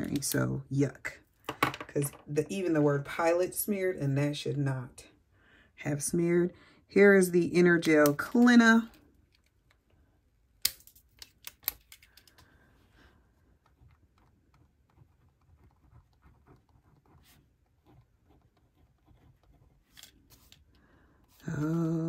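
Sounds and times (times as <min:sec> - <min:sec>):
pen scratching on paper: 0:13.7 - 0:20.5.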